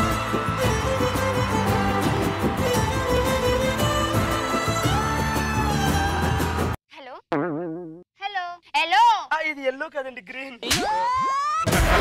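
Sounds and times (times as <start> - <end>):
background music: 0.0 - 6.8
warbling comic sound effects: 7.3 - 8.0.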